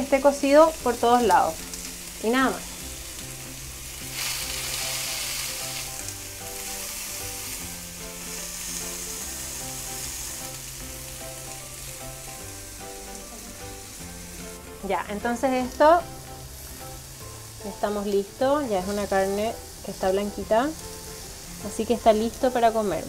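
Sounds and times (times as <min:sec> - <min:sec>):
meat sizzling on grill pan: 0:00.0 - 0:23.0
soft background music: 0:00.0 - 0:23.0.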